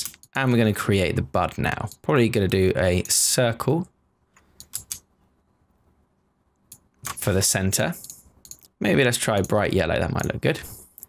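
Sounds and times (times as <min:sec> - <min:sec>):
mouse and keyboard clicks: 0:04.4 - 0:05.1.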